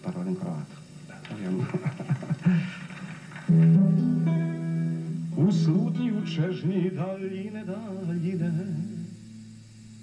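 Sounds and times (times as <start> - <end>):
acoustic guitar chord strummed: 3.4 - 10.0.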